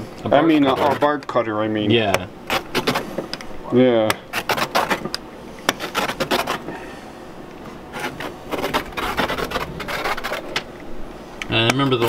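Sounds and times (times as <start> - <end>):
pizza cutter scraping chocolate: 0.0 - 3.3, 4.2 - 6.8, 7.9 - 10.7.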